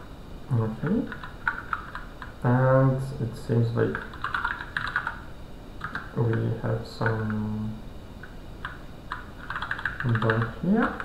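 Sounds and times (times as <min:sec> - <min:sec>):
typing on computer keyboard: 0:01.1 - 0:02.3, 0:03.9 - 0:05.2, 0:05.8 - 0:07.4, 0:08.6 - 0:11.0.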